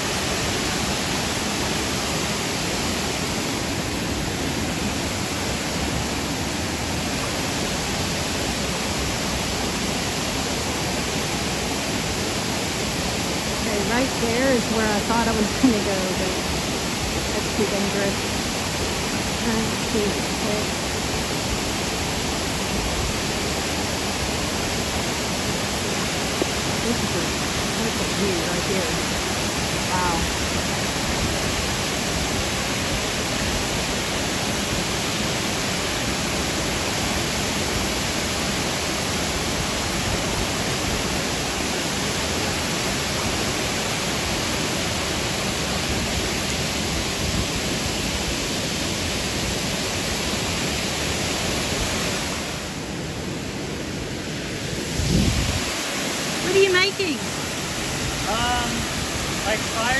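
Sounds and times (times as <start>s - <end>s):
waterfall rushing: 0.0s - 59.9s
people's voices: 13.6s - 16.4s, 19.4s - 20.7s, 26.8s - 29.0s, 29.9s - 30.3s, 56.4s - 57.2s.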